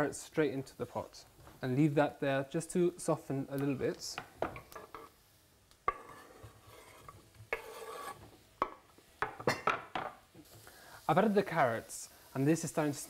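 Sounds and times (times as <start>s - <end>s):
wooden spoon scraping a pot: 5.9s - 8.4s.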